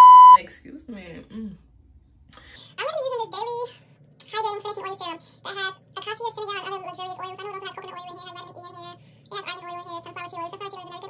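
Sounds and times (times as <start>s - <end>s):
woman talking: 0.3s - 1.6s.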